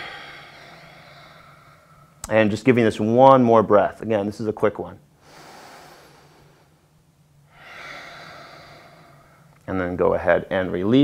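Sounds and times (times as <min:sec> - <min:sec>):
man breathing: 0:00.0 - 0:02.2, 0:05.2 - 0:09.7.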